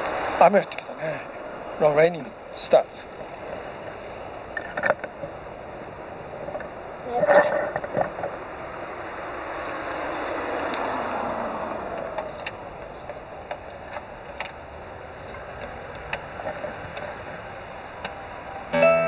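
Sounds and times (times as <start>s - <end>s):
vehicle passing by: 0.0s - 4.6s, 5.3s - 19.0s.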